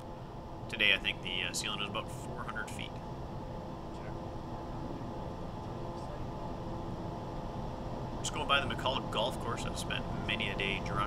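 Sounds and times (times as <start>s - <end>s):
jet engines humming: 0.0s - 11.0s.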